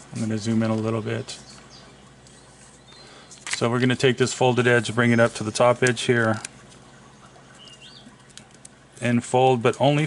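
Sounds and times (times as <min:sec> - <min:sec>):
paper handling: 0:02.2 - 0:03.9
faint high chirp: 0:07.1 - 0:08.2.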